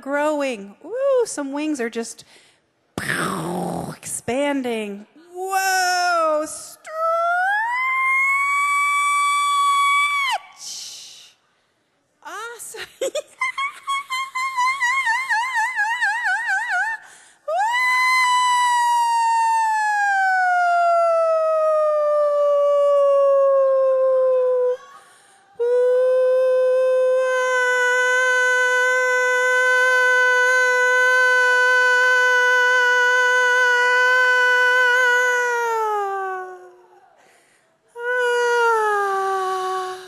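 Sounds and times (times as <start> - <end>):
woman's wordless howl-like singing: 5.4 - 11.1, 13.4 - 25.0, 25.6 - 37.0, 38.0 - 40.0.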